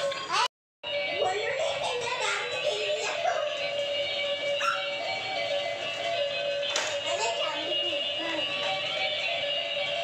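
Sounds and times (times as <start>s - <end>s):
electronic toy music: 0.9s - 10.0s.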